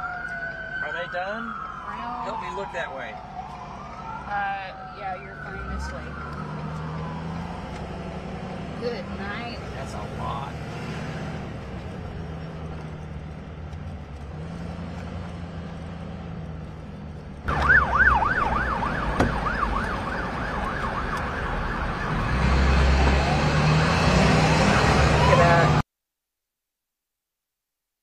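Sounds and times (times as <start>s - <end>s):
emergency siren yelping: 0.0s - 8.4s, 17.5s - 25.8s
vehicle engine and road noise: 0.0s - 25.8s
heavy engine rumble: 9.6s - 25.8s.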